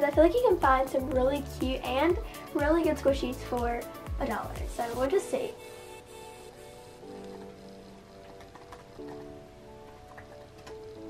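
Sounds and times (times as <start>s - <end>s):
soft background music chords: 0.0s - 11.0s
typing on laptop keyboard: 7.0s - 11.0s.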